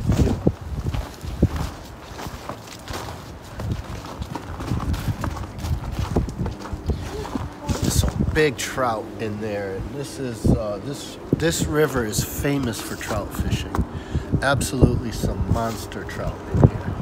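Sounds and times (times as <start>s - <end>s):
hollow footsteps on wooden deck: 0.0s - 8.4s.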